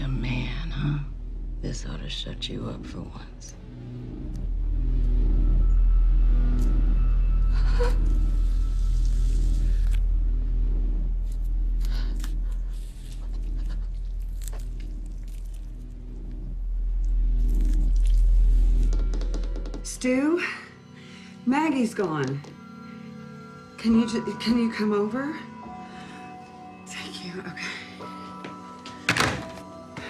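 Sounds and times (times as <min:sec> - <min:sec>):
background music: 0:00.0 - 0:30.0
low droning film score: 0:00.0 - 0:30.0.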